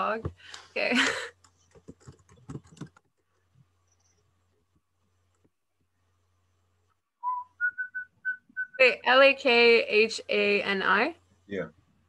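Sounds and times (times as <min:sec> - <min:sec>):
typing on computer keyboard: 0:01.5 - 0:03.2.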